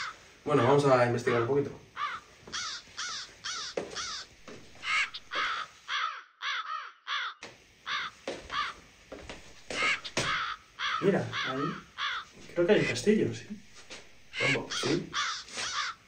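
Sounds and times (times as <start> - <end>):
crows cawing: 0.0 - 13.1, 13.9 - 16.0.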